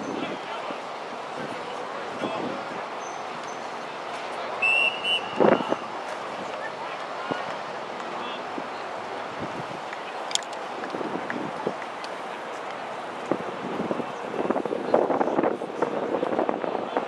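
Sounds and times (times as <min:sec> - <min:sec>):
open-air ambience: 0:00.0 - 0:17.0
spectators' voices: 0:00.0 - 0:17.0
referee's whistle blast: 0:04.6 - 0:05.9.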